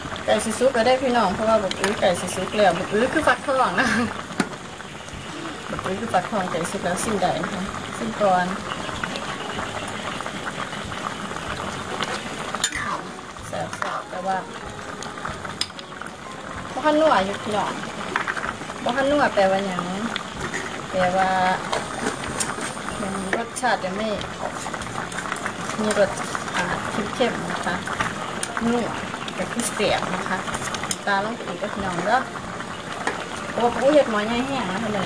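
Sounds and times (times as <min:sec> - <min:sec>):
pot bubbling with small pops: 0:00.0 - 0:35.0.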